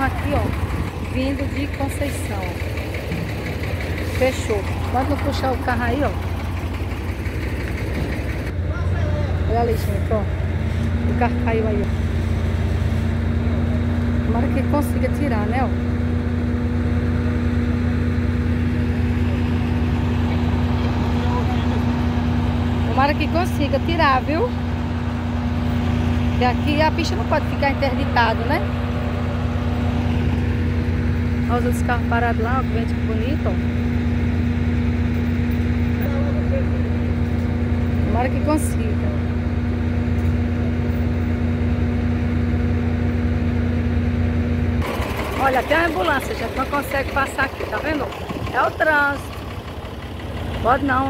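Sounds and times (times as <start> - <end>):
diesel truck engine running: 0.0 - 51.0.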